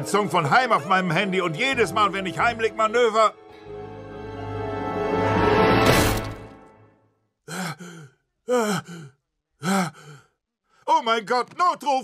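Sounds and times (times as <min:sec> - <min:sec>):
man gasping sighs: 0:07.4 - 0:10.4.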